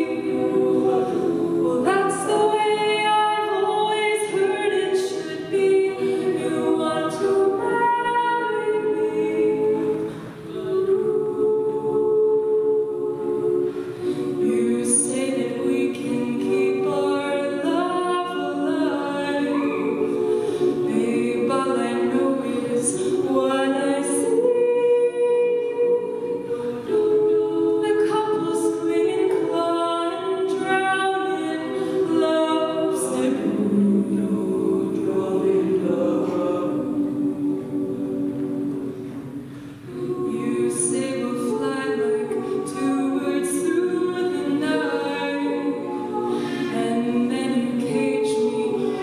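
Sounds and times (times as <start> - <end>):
women singing in close harmony: 0.0 - 49.0.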